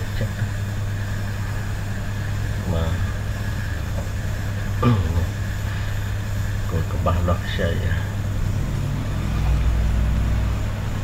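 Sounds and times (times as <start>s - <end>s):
steady low hum: 0.0s - 11.0s
person speaking: 6.7s - 8.2s.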